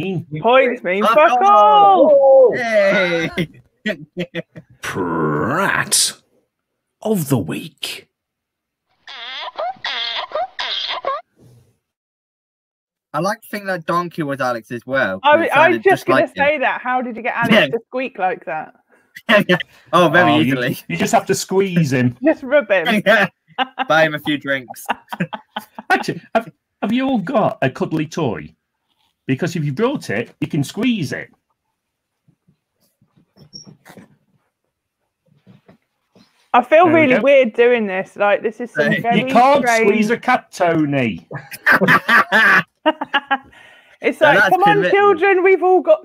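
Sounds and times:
plush toy squeaks: 0:09.0 - 0:11.3.

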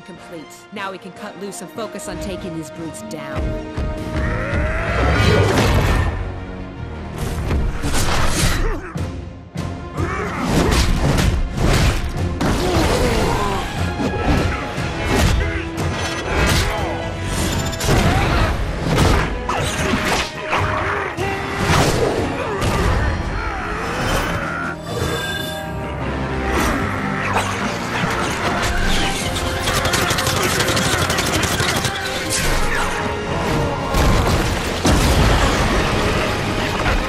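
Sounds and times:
dramatic background music: 0:00.0 - 0:37.0.

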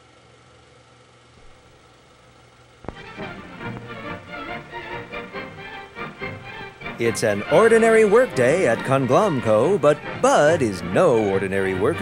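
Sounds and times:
faint background hiss: 0:01.2 - 0:11.3
low hum: 0:01.4 - 0:07.4.

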